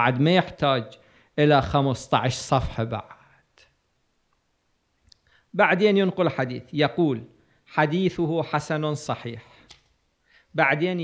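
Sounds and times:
man speaking: 0:00.0 - 0:03.7, 0:05.5 - 0:09.6, 0:10.5 - 0:11.0.

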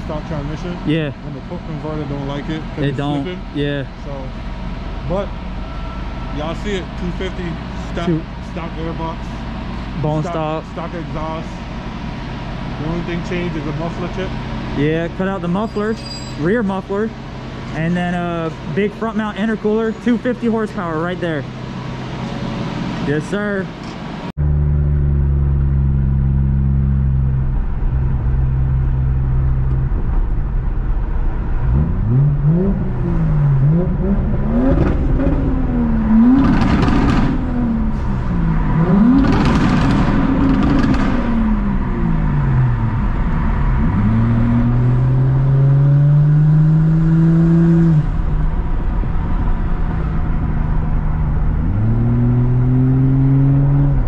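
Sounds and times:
car engine revving: 0:00.0 - 0:54.0.

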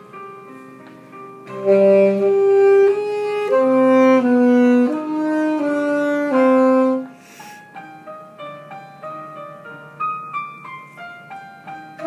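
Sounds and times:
piano accompaniment: 0:00.0 - 0:12.0
saxophone playing held notes: 0:01.5 - 0:07.2
short breathy hiss: 0:07.2 - 0:07.7.

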